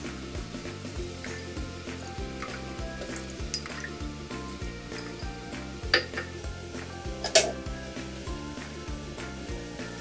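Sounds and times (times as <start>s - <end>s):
water sizzling in a hot wok: 0.0s - 10.0s.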